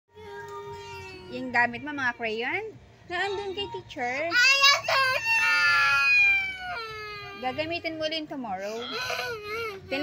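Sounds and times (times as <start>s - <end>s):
girl crying and wailing: 4.4s - 7.7s, 8.6s - 10.0s.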